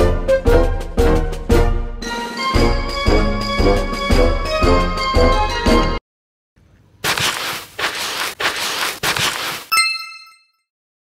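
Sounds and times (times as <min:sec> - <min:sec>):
bell-like chime: 0:09.7 - 0:10.7.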